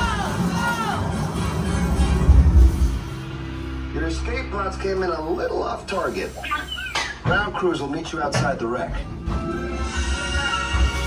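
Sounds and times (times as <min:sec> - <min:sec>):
heavy low rumbles: 0:00.0 - 0:05.9
ride soundtrack music: 0:00.0 - 0:11.0.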